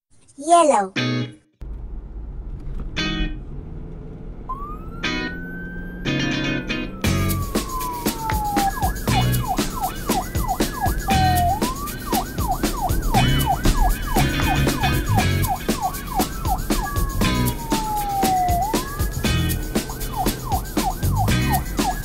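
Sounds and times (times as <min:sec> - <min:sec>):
police siren: 0:04.5 - 0:22.0
beat-driven music: 0:06.2 - 0:22.0.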